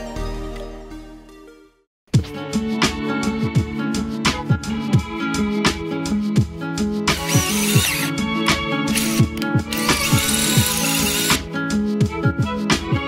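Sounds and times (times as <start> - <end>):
background music with steady beat: 0.0 - 13.0
power drill drilling metal: 7.1 - 8.2, 8.9 - 11.4.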